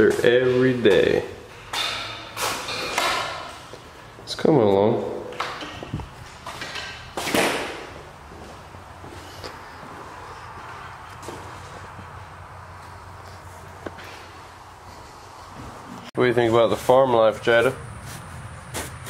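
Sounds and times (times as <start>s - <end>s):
footsteps on concrete floor: 0.0s - 19.0s.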